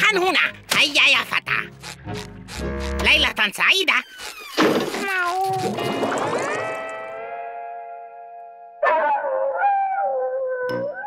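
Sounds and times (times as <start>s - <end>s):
wavering cartoon animal howl: 8.8s - 11.0s.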